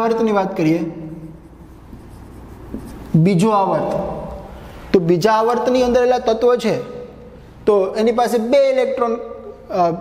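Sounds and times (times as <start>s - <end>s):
marker scratching on whiteboard: 1.0s - 4.4s.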